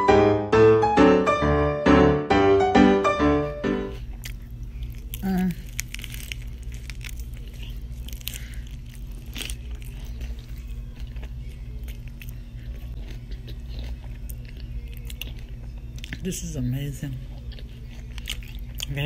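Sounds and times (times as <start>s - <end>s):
low steady hum: 0.0s - 19.0s
person chewing crunchy food: 3.9s - 19.0s.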